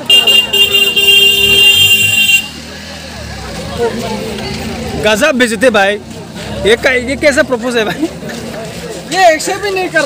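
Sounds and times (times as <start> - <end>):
loud horn blast: 0.0 - 2.6
crowd chatter: 0.0 - 10.0.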